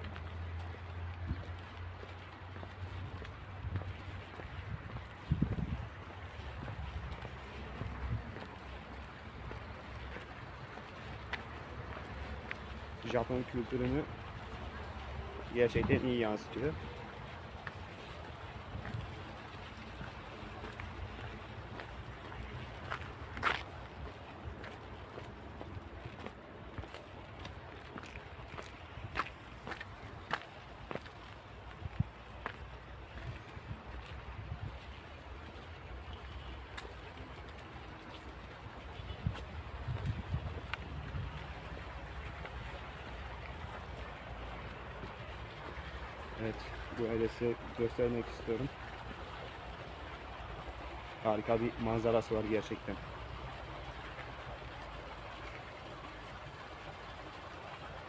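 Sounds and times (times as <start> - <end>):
wind buffeting a microphone: 3.0 - 8.7, 31.7 - 32.2, 33.0 - 35.0, 39.0 - 41.8.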